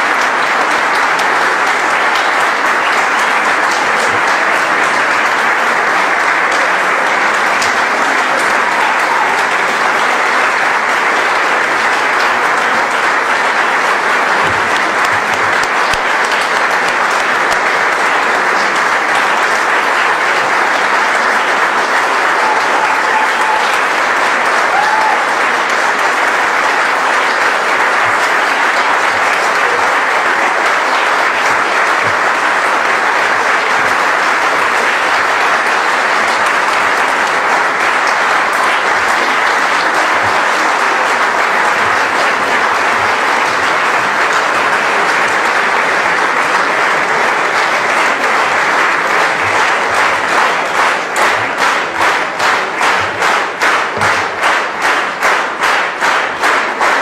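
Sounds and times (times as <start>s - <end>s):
audience applauding: 0.0s - 57.0s.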